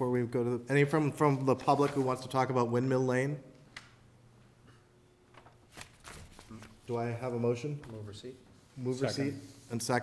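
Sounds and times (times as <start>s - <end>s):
paper rustling: 1.3s - 2.4s, 5.3s - 8.2s
man speaking: 6.6s - 10.0s.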